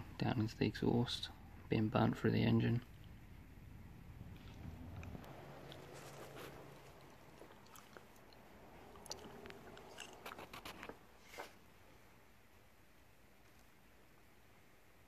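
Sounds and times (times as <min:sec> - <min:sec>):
light rustling: 0:04.3 - 0:08.2.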